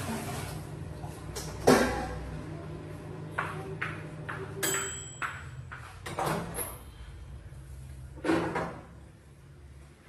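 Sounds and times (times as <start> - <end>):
kitchen knocks and clicks: 3.4 - 6.8.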